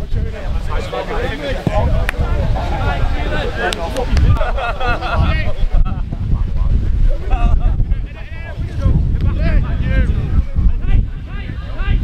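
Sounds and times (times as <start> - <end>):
wind buffeting microphone: 0.0 - 12.0
footballers shouting: 0.4 - 12.0.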